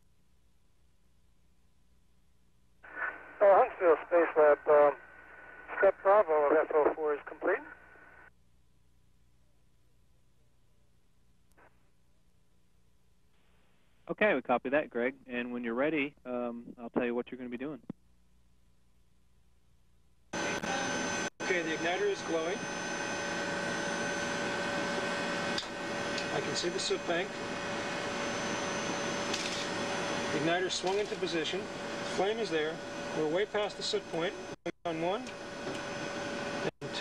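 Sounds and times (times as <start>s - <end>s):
high steady whines: 2.8s - 8.3s, 20.2s - 37.0s
voice over radio: 2.9s - 7.8s.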